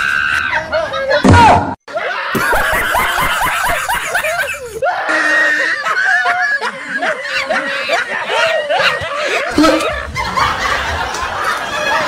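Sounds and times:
high-pitched shrieking voices: 0:02.4 - 0:10.1.

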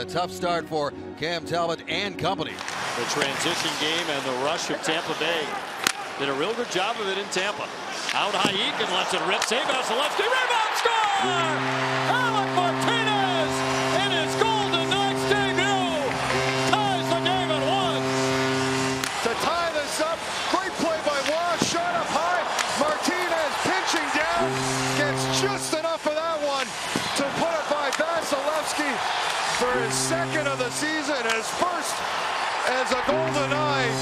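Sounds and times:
crowd cheering: 0:02.6 - 0:34.0
arena goal horn blaring: 0:10.1 - 0:34.0.

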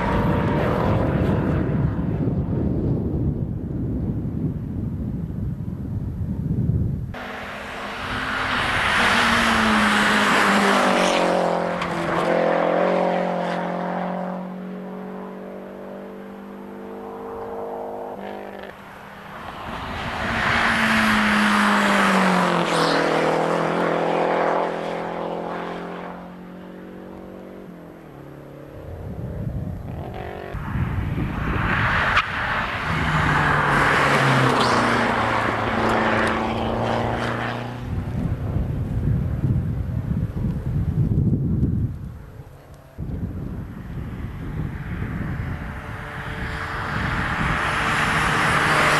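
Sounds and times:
rally cars passing: 0:00.0 - 0:03.4, 0:07.1 - 0:41.4, 0:42.1 - 0:48.9.

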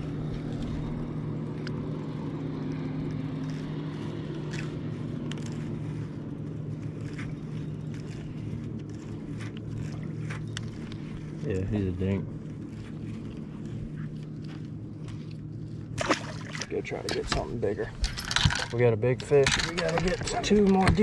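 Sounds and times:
electric trolling motor humming: 0:00.0 - 0:18.7.

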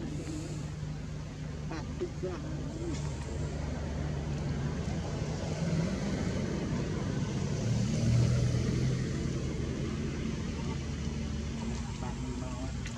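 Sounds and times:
vehicle engine humming: 0:00.0 - 0:12.9.

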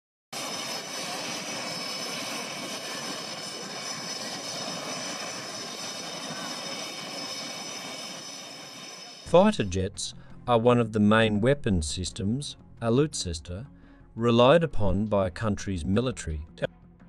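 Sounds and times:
high whining tones: 0:00.4 - 0:09.7
jet engine and air rush: 0:00.4 - 0:10.4.

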